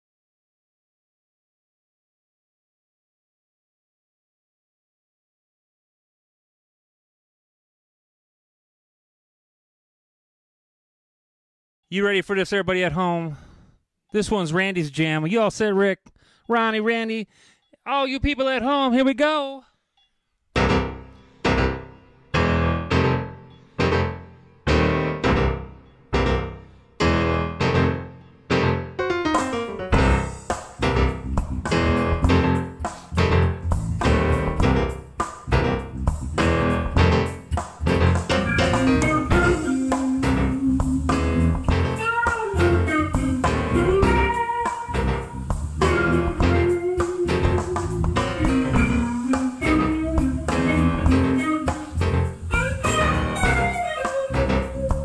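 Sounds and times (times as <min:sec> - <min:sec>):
electric bass: 0:20.6 - 0:55.0
electric guitar: 0:20.6 - 0:55.0
held melody line: 0:20.6 - 0:55.0
keyboard riff: 0:20.6 - 0:55.0
drum kit beat: 0:29.3 - 0:55.0.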